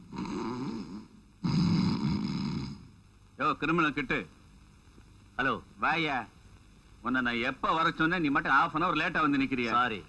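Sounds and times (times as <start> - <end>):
man snoring: 0.1 - 2.9.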